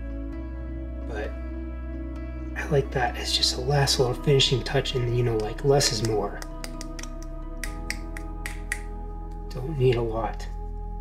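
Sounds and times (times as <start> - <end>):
snap-like clicks beat: 5.3 - 9.0.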